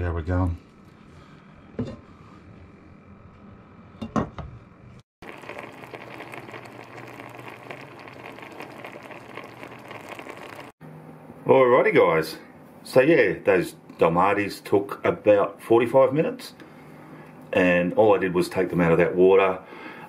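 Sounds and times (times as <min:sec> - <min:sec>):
pot simmering and bubbling: 0:05.2 - 0:10.8.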